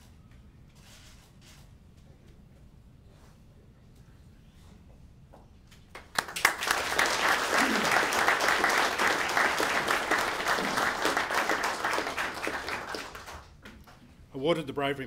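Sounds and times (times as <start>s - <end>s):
audience applauding: 5.9s - 13.6s.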